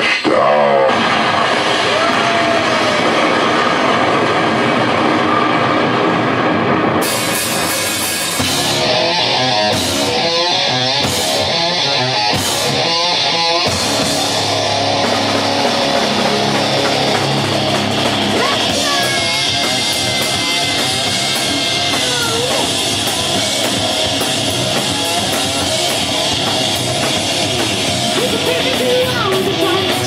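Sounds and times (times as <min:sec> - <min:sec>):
live rock band playing: 0:05.0 - 0:30.0.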